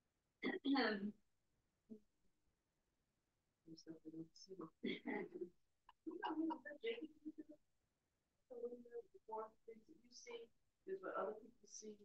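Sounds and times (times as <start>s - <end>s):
person talking: 3.8s - 7.5s
person laughing: 5.9s - 7.5s.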